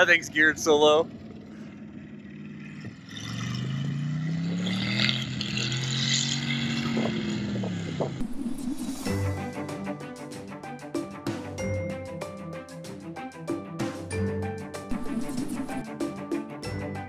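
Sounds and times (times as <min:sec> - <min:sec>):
truck engine accelerating: 0:00.0 - 0:10.1, 0:13.5 - 0:17.0
outro music: 0:08.2 - 0:17.0.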